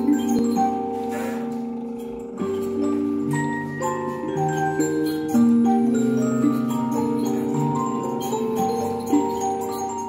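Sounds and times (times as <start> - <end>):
music box playing: 0.0 - 10.0.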